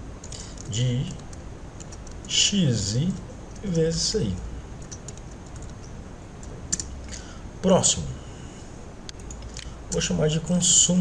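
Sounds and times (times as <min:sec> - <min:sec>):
typing on computer keyboard: 0:01.0 - 0:02.3, 0:04.8 - 0:06.9.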